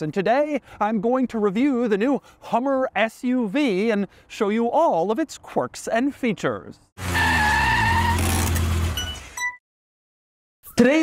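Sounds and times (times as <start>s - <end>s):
tire squeal: 7.0s - 9.4s.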